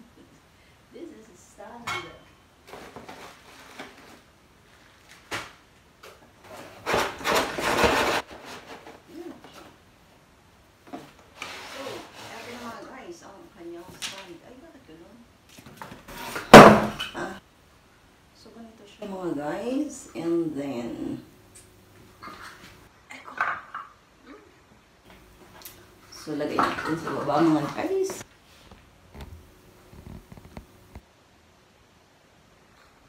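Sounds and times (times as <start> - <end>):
cardboard scraping and rustling: 6.4 - 9.8.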